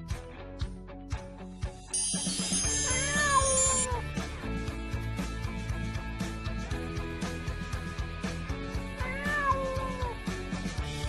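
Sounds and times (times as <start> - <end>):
upbeat background music: 0.0 - 11.0
cat meowing: 2.8 - 4.0, 9.0 - 10.2.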